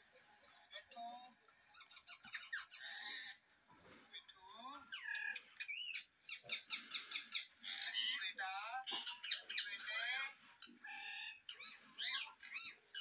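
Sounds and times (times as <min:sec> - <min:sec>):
parakeet chattering: 0:01.7 - 0:03.4, 0:04.2 - 0:13.0.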